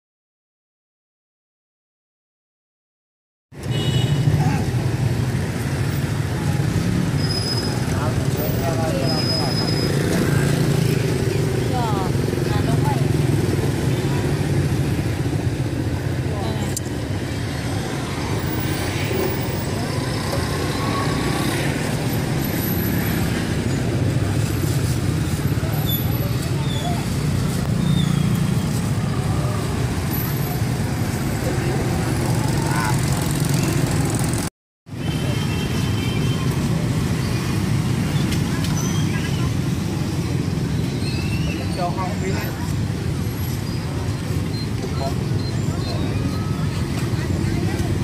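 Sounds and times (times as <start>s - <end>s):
road traffic rumble: 3.5s - 48.0s
motorbikes: 3.6s - 48.0s
people talking: 7.9s - 14.8s, 16.0s - 16.8s, 25.5s - 27.4s, 31.4s - 34.0s, 43.9s - 48.0s.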